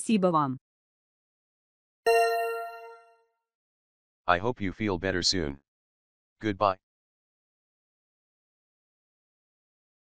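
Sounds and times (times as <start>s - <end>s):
bell-like chime: 2.1s - 3.2s.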